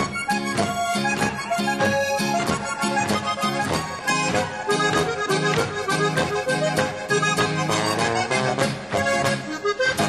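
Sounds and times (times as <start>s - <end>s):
accordion: 0.0s - 10.0s
bouncing bass and chord beat: 0.0s - 10.0s
folk band dance tune: 0.0s - 10.0s.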